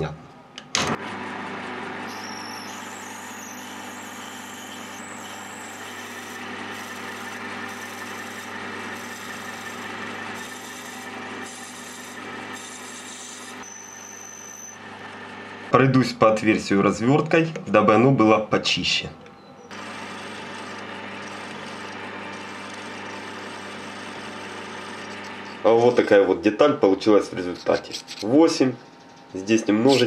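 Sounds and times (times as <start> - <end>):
lathe motor hum: 1.0 - 15.8, 19.7 - 26.2
drill cutting metal hiss: 2.1 - 14.8.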